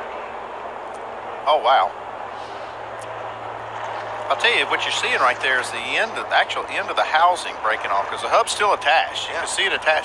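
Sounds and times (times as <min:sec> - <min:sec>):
race cars running on track: 0:00.0 - 0:10.0.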